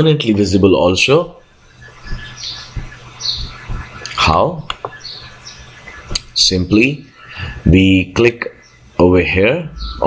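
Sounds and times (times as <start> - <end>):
high bird chirps: 0.7 - 7.6, 8.2 - 10.0
soft low thumps: 1.2 - 6.5
low hum: 8.4 - 10.0.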